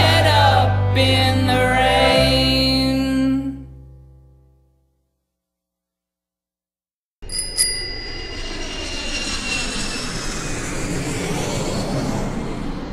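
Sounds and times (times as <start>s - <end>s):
bicycle bell ringing: 7.2s - 8.3s.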